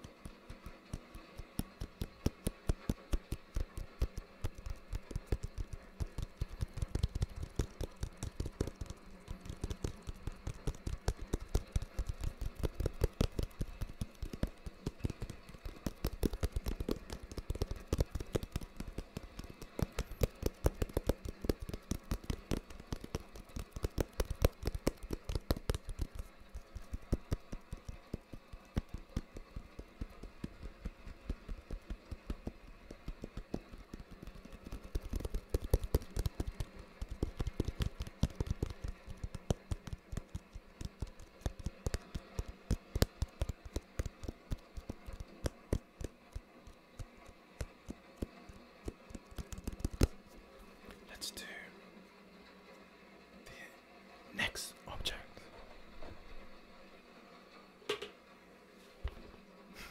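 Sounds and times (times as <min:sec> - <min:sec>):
fingernails tapping on hard object: 0:00.0 - 0:50.2
faint hiss of rain: 0:00.0 - 0:59.9.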